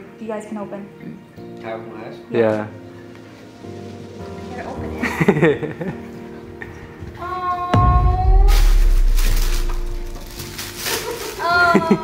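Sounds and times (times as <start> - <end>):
background music with held tones: 0.0 - 12.0
low boom: 7.8 - 10.6
tissue paper rustling: 8.2 - 12.0
woman exclaiming in surprise: 11.4 - 12.0.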